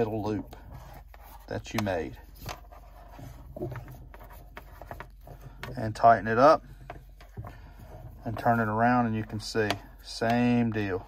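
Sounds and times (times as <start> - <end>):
rope rustling through a knot: 0.0 - 11.0.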